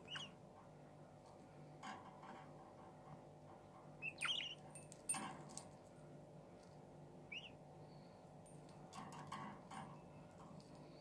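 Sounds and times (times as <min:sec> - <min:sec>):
budgerigar chirping: 0:00.0 - 0:00.4, 0:04.0 - 0:04.6, 0:07.3 - 0:07.6.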